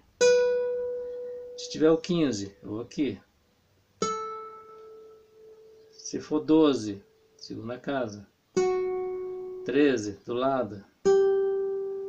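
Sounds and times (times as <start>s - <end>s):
classical guitar note ringing: 0.2s - 1.8s.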